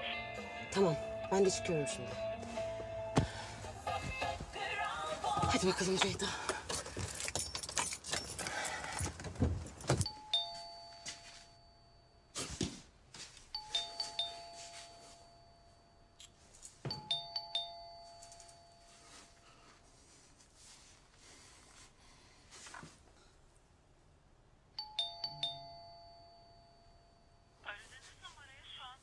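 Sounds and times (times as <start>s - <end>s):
music: 0.0s - 5.8s
two-tone doorbell chime: 10.0s - 12.4s, 13.5s - 19.8s, 24.8s - 27.6s.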